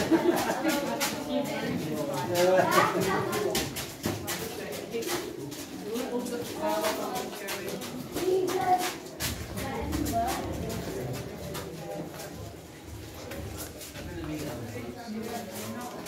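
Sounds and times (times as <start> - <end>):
clicks and scuffs: 2.3 - 16.0.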